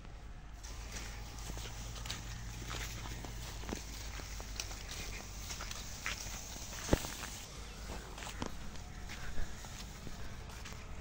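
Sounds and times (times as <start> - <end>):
footsteps crunching on stubble: 0.6 - 11.0.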